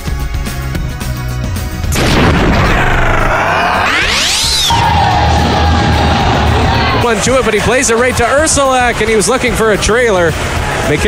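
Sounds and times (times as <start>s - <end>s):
music: 0.0s - 11.0s
sharp hit: 1.9s - 6.0s
whooshing sweep rising in pitch: 2.6s - 6.9s.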